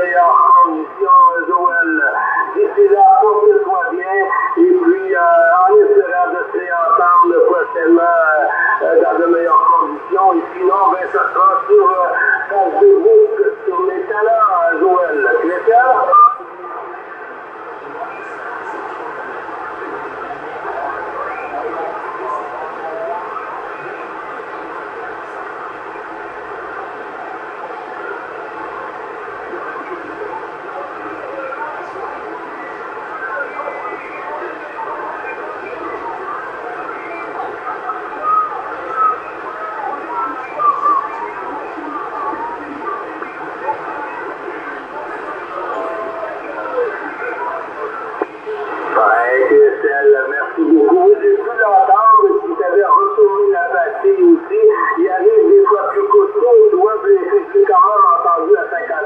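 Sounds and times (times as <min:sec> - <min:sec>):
thin radio voice: 0:33.5 - 0:59.0.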